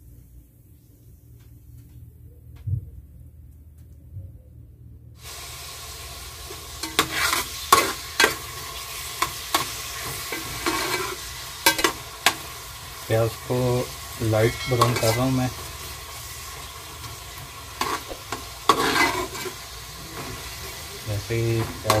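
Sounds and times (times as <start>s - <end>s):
quiet hum: 0.0s - 22.0s
onions sizzling in hot oil: 5.2s - 22.0s
spatula scraping and knocking pot: 6.8s - 8.4s, 14.4s - 15.4s, 17.8s - 19.6s.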